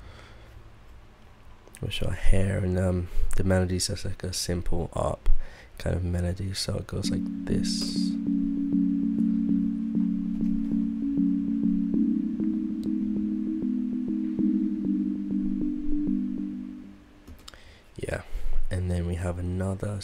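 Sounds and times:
sine-bell synthesizer melody: 0:07.0 - 0:17.2.

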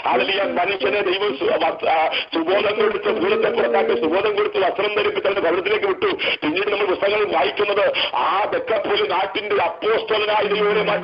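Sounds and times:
person talking over telephone line: 0:00.0 - 0:11.0.

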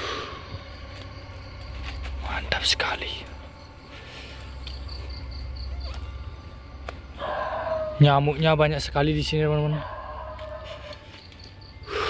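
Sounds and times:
steady low rumble: 0:00.0 - 0:09.7
insect chirping: 0:00.0 - 0:12.0.

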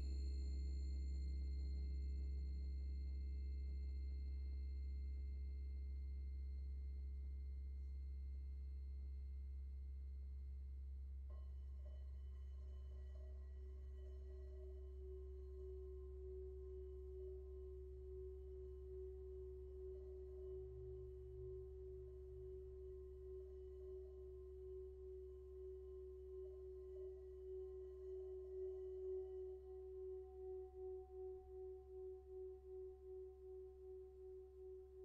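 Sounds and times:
singing bowl tone: 0:00.0 - 0:09.9, 0:11.3 - 0:35.0.

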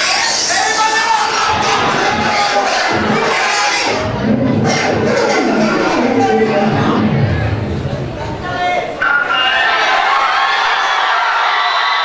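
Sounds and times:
audience shouting and cheering: 0:00.0 - 0:12.0.

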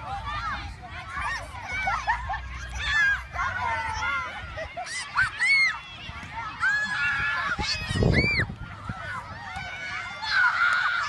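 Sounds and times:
children shrieking and yelling: 0:00.0 - 0:11.0.

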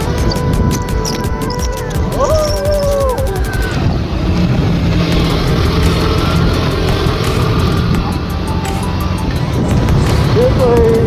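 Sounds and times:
background music: 0:00.0 - 0:11.0
motorcycle engine running: 0:00.0 - 0:11.0
wind and road noise: 0:00.0 - 0:11.0.

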